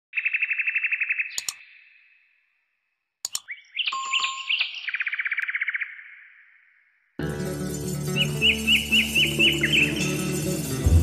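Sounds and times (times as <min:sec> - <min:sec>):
quick chirping tones: 0:01.0 - 0:02.0, 0:03.3 - 0:05.5
sharp clicks: 0:01.3 - 0:01.6, 0:03.2 - 0:03.5.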